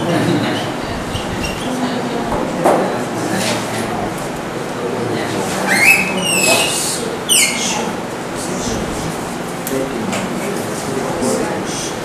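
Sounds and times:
murmur of voices: 0.0 - 12.0
high-pitched marker squeak: 5.7 - 7.9.

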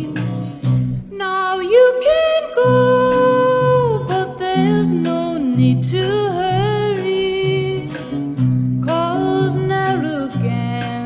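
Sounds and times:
sliding held melody notes: 0.0 - 11.0.

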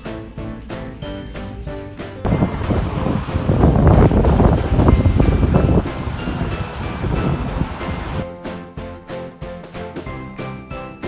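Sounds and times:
faint background music: 0.0 - 11.0
wind buffeting microphone: 2.2 - 8.2.

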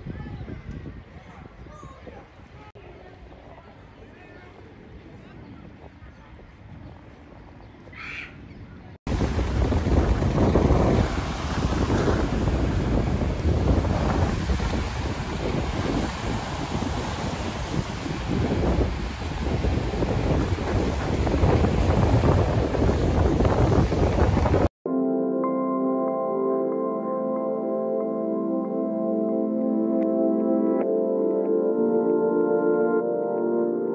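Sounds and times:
wind buffeting microphone: 0.0 - 7.9, 8.6 - 24.7
surf breaking on beach: 9.1 - 24.7.

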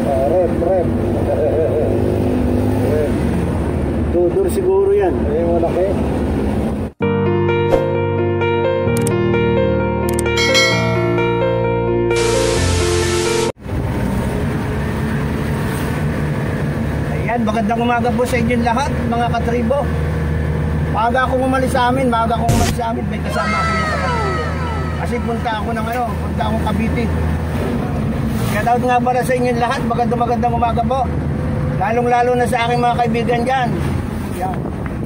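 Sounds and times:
vehicle engine and road noise: 0.0 - 7.0, 12.2 - 35.0
intro music: 7.0 - 13.6, 23.7 - 26.4
man humming: 23.3 - 26.3.

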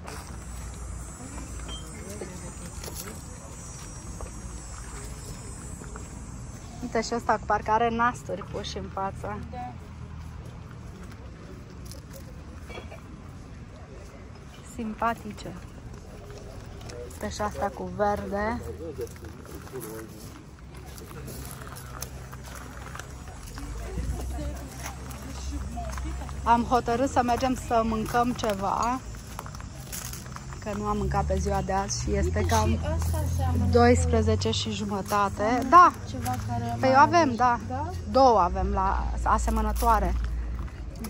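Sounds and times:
faint voices talking: 0.0 - 41.0.

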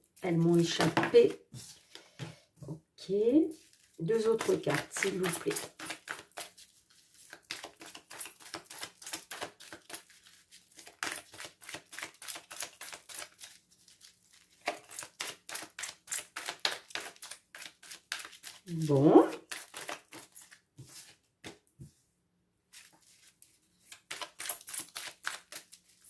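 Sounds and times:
cards being shuffled: 3.6 - 18.8, 22.7 - 26.0.

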